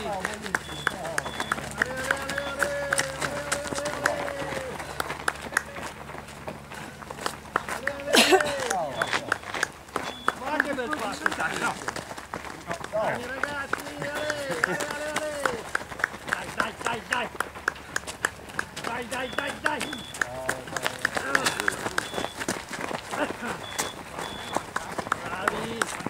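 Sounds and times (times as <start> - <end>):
running footsteps on gravel: 0.0 - 26.0
short high beeps: 0.6 - 2.6, 8.9 - 10.5, 19.2 - 20.3, 22.0 - 22.4, 23.6 - 24.6.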